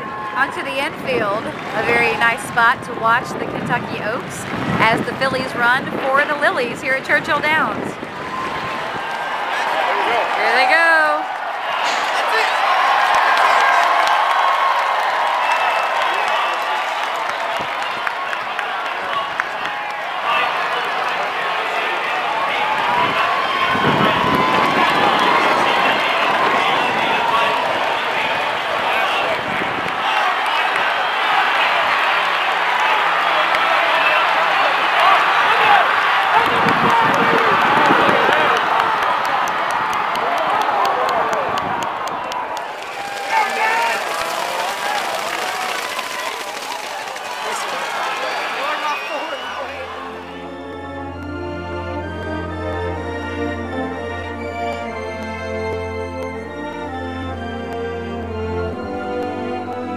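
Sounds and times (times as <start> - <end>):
crowd cheering and yelling: 0.0 - 59.9.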